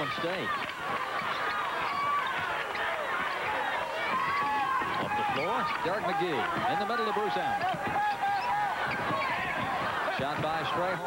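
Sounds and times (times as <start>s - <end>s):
arena crowd noise: 0.0s - 11.0s
shoes squeaking on court: 1.0s - 10.0s.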